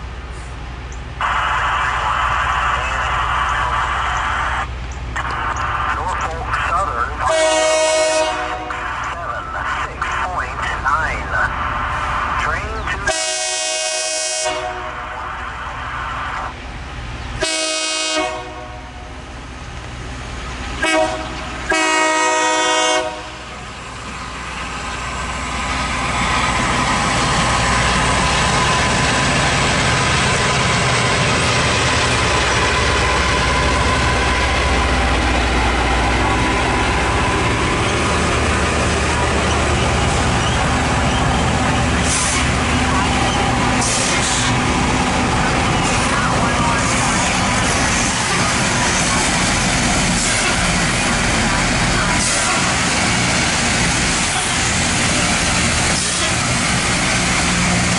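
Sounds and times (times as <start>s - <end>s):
engines rumbling: 0.0s - 57.9s
rail grinding noise: 0.0s - 57.9s
train air horn blasts: 7.3s - 8.7s, 13.1s - 15.1s, 17.4s - 19.0s, 20.8s - 23.4s.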